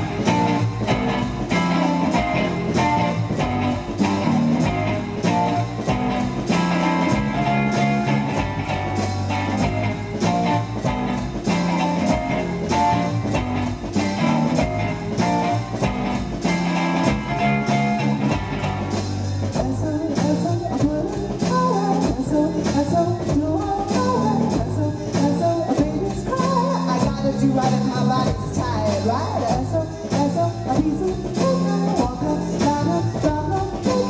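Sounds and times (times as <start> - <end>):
steady beat: 0.0 - 19.8
low bass notes: 0.0 - 34.0
woman singing: 19.3 - 34.0.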